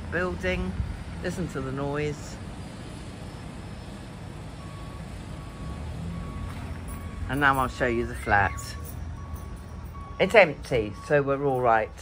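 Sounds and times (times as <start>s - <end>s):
reversing alarm beeping: 2.6s - 12.0s.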